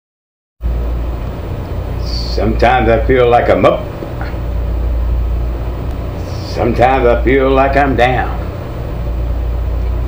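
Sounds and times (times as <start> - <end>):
steady low hum: 0.6 - 10.0.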